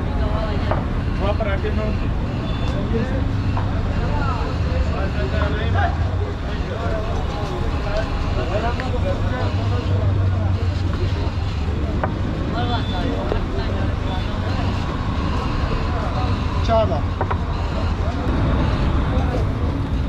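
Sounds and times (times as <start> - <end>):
people talking nearby: 0.0 - 20.0
traffic rumble: 0.0 - 20.0.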